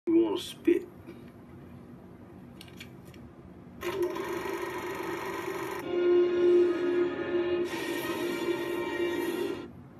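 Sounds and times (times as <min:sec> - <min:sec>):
held musical chord from television: 0:05.8 - 0:09.8.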